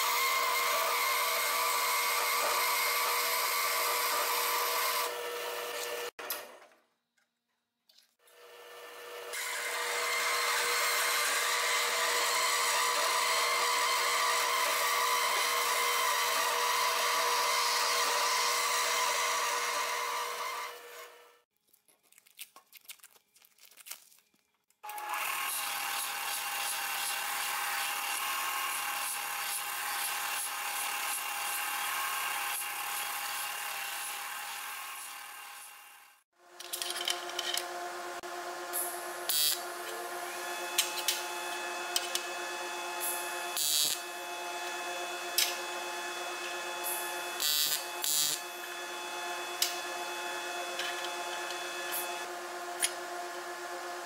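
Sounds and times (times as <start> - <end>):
belt sander sanding metal: 36.7 - 54.0.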